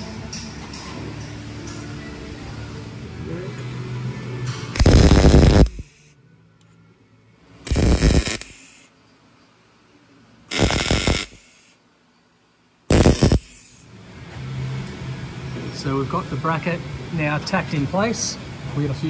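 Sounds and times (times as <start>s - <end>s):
welder crackling sizzle: 4.8s - 6.0s, 7.7s - 8.8s, 10.5s - 11.7s, 12.9s - 13.6s.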